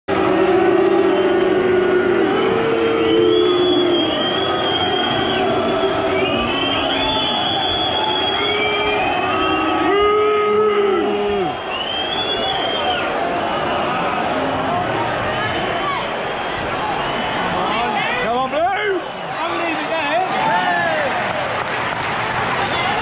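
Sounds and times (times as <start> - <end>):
stadium crowd chanting: 0.1 - 23.0.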